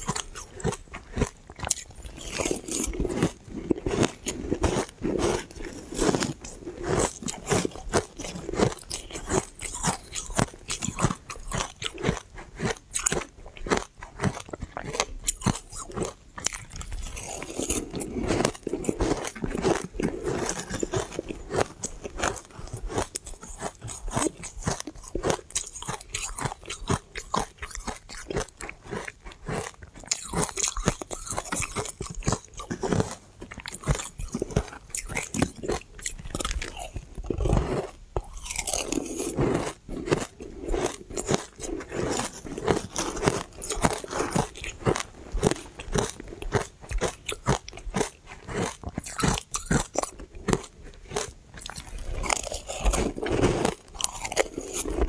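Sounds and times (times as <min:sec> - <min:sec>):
crunching and chewing ice: 0:00.0 - 0:55.0.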